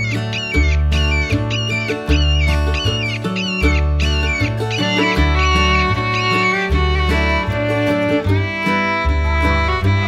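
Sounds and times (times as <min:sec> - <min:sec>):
upbeat string music: 0:00.0 - 0:10.0.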